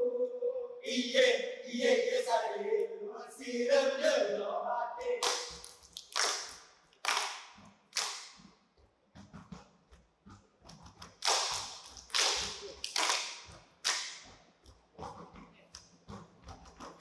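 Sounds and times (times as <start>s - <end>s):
dancers clapping and slapping bodies: 5.2s - 8.5s, 10.8s - 17.0s.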